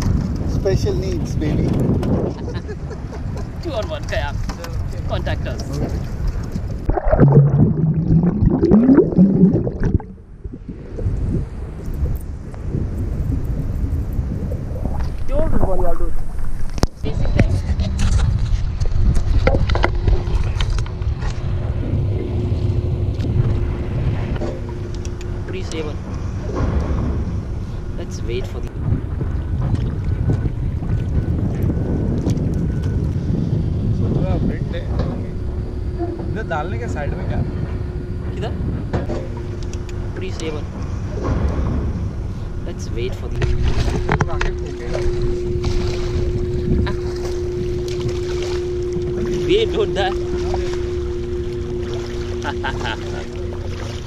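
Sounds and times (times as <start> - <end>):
wind on microphone: 0.0 - 54.0
water sloshing: 3.4 - 33.3, 35.0 - 54.0
muffled pitched sound: 6.9 - 11.1.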